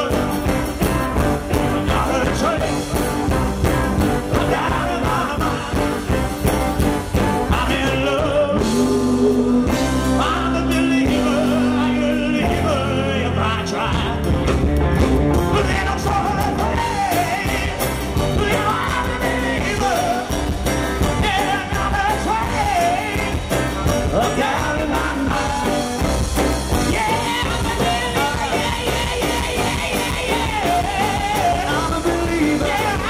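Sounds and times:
live rock band playing: 0.0s - 33.0s
male lead vocals: 0.0s - 33.0s.

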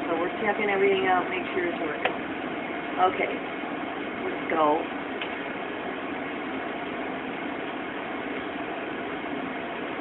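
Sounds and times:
machine running hum and hiss: 0.0s - 10.0s.

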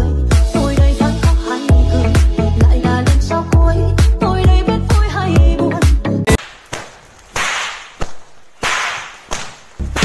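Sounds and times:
sharp crack: 6.4s - 10.0s.

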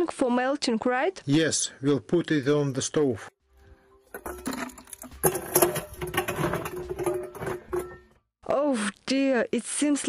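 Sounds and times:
ice clinking against metal: 4.1s - 8.1s
saucepan scraping metal bin: 4.2s - 8.2s.

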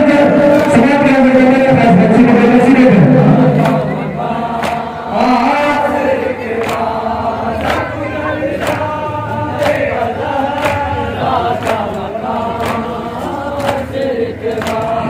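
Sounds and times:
men chanting in unison: 0.0s - 15.0s
chest-beating slaps: 4.5s - 4.9s.

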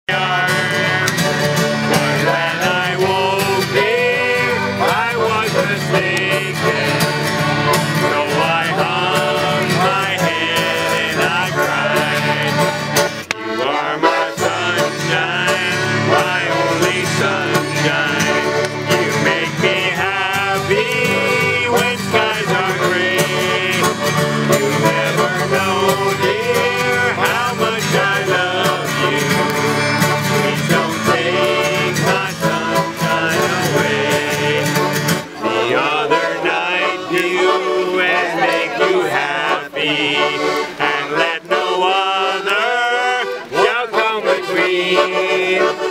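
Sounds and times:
acoustic guitar strumming: 0.1s - 45.9s
button accordion: 0.1s - 45.9s
men singing country song: 0.1s - 45.9s.

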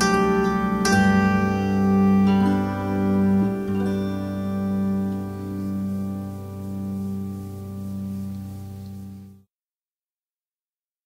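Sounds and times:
zither chord ringing: 0.0s - 9.3s.

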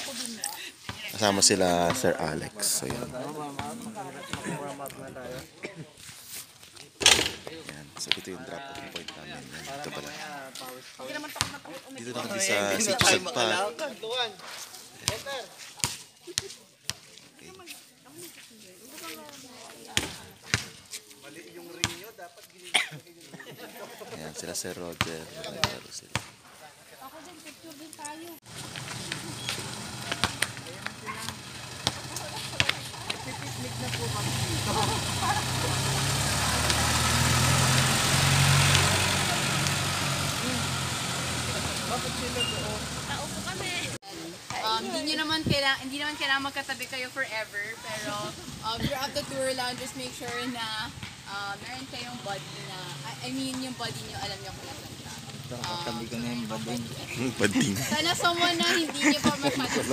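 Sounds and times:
voices: 0.0s - 59.9s
diesel engine running: 28.4s - 44.0s.

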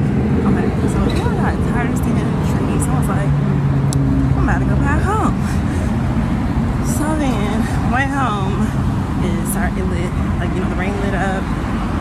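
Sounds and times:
cars passing: 0.0s - 12.0s
vehicle engine hum: 0.0s - 12.0s.

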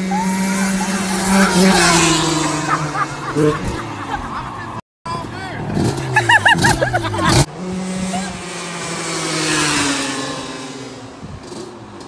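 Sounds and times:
racing engines passing by: 0.0s - 12.0s.

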